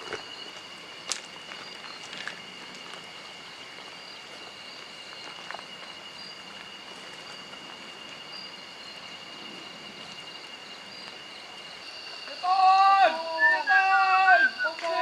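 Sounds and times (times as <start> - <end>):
insect pulsing chirp: 0.0 - 15.0
insects droning: 0.0 - 15.0
outdoor background hiss: 0.0 - 15.0.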